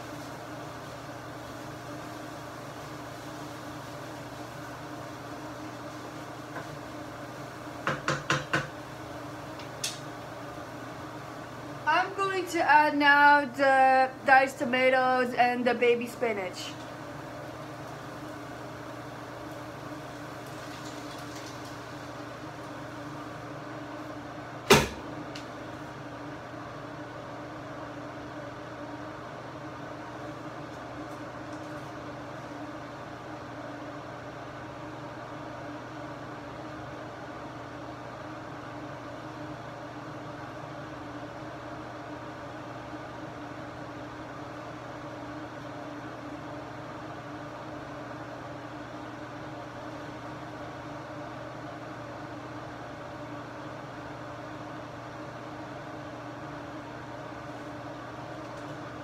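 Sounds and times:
range hood fan humming: 0.0 - 59.0.

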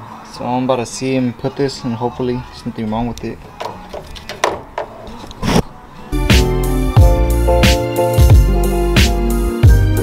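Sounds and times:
clicks of wiring being handled: 3.6 - 5.6.

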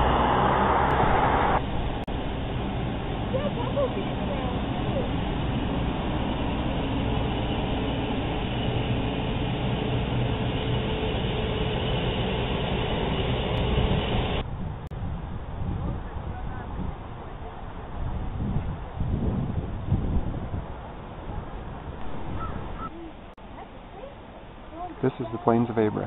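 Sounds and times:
traffic rumble and hiss: 0.0 - 26.0.

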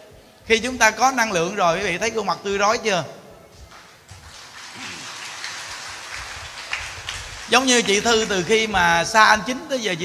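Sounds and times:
audience applauding: 3.7 - 8.9.

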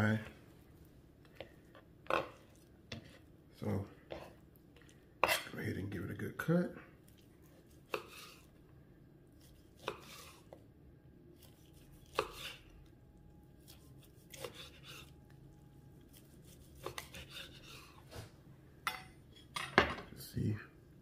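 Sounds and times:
knife slicing meat: 7.1 - 8.5, 9.3 - 10.6, 11.3 - 12.7, 13.6 - 15.3, 15.9 - 18.1.

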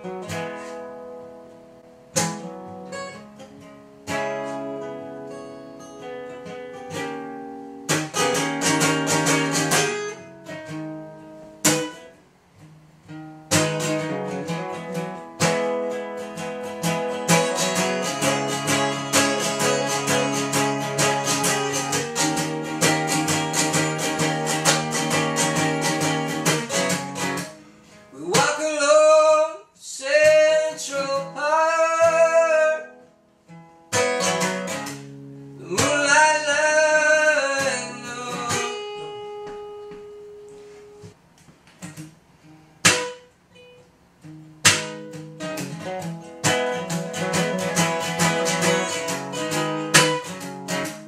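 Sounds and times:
acoustic guitar strumming chords: 0.0 - 51.0.

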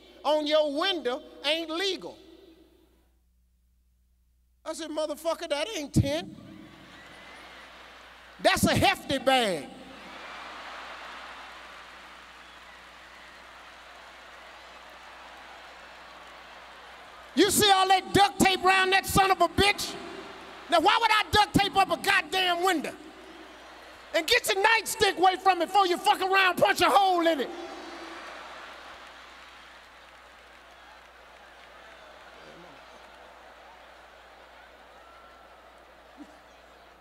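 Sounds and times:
audience applauding: 6.4 - 37.0.

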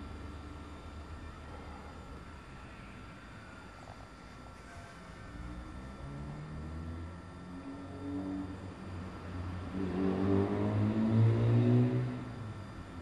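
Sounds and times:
motor engine revving: 9.7 - 12.4.

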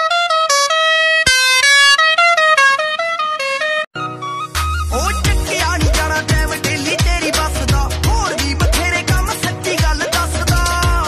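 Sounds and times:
musical vehicle horn tune: 0.0 - 6.0.

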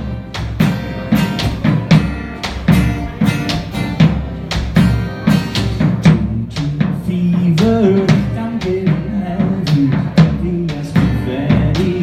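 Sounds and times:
acoustic guitar: 0.0 - 12.0
drum beat: 0.0 - 12.0.

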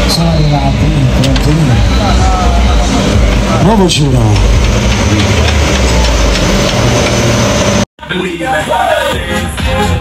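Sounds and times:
people's voices: 0.0 - 6.9.

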